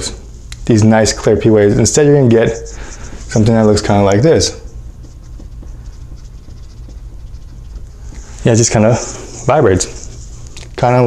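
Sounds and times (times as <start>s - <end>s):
marker scratching on whiteboard: 1.6s - 10.6s.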